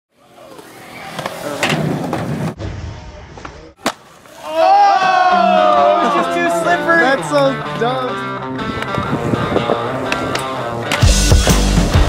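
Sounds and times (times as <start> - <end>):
skateboard wheels rolling on concrete: 0.1 - 2.6, 3.3 - 12.0
skateboard clacks: 8.7 - 11.2.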